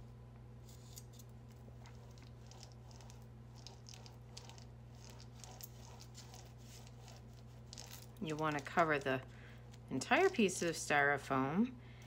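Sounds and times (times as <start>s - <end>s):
paint roller crackling on foam plate: 0.6s - 11.3s.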